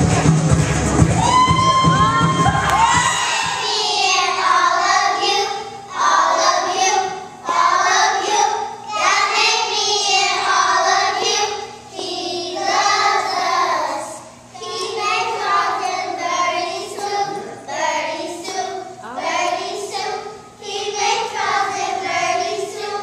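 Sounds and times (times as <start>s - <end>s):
music with heavy bass: 0.0s - 2.7s.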